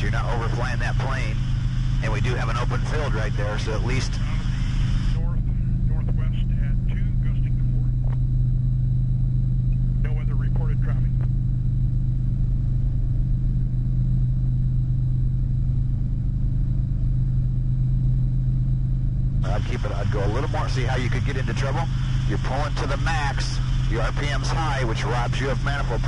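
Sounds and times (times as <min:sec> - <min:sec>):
helicopter engine and rotor drone: 0:00.0 - 0:26.0.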